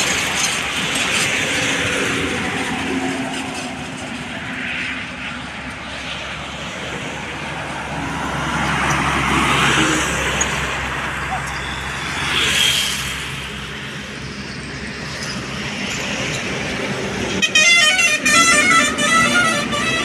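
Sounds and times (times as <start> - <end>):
passing vehicles tyre and engine noise: 0.0 - 20.0
truck passing: 0.0 - 20.0.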